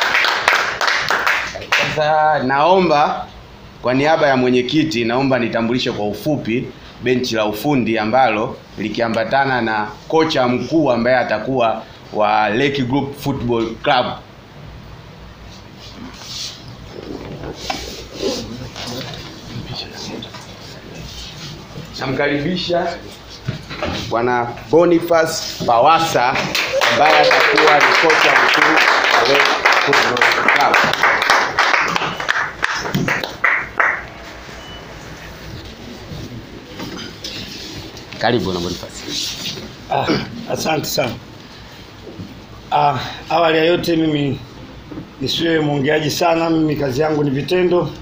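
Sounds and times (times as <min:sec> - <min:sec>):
people clapping: 0:00.0 - 0:02.0, 0:26.0 - 0:34.3
chairs shifting: 0:16.8 - 0:22.0, 0:35.5 - 0:38.2.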